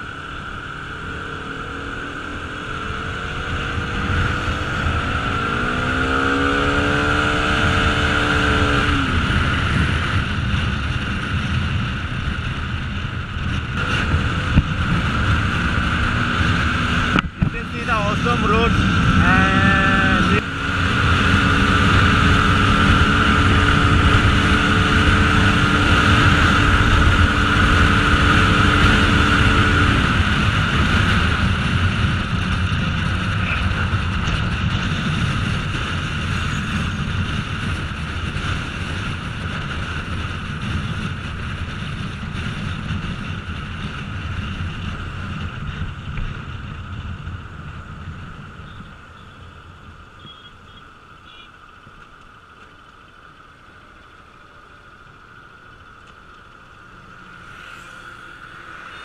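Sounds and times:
motorcycle engine running: 0:00.0 - 0:59.0
wind on microphone: 0:01.8 - 0:50.6.

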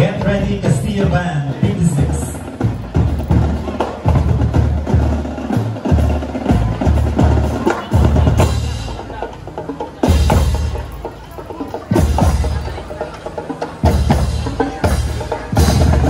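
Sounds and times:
bass drum beat: 0:00.0 - 0:16.0
brass marching band playing: 0:00.0 - 0:16.0.

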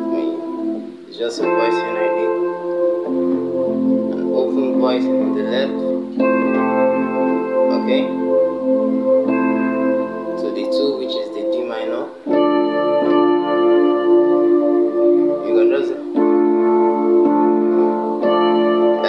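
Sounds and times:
electronic keyboard chords: 0:00.0 - 0:19.0.

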